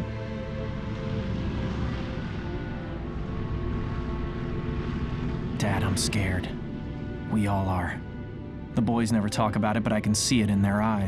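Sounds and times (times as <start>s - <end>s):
propeller aircraft engines droning: 0.0s - 11.0s.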